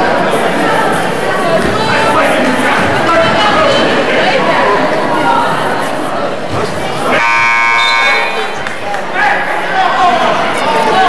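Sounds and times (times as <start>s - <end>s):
crowd chatter: 0.0s - 11.0s
scoreboard horn buzz: 7.1s - 8.6s.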